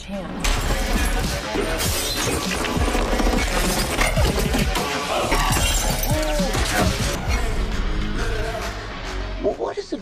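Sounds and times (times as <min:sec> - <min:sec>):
glass shattering: 0:00.4 - 0:07.2.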